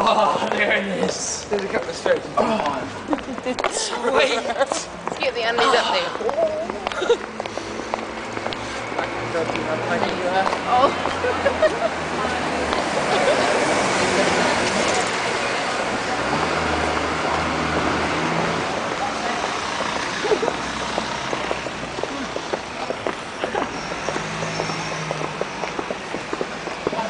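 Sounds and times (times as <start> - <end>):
footsteps on pavement: 0.4 - 13.5, 16.8 - 27.0.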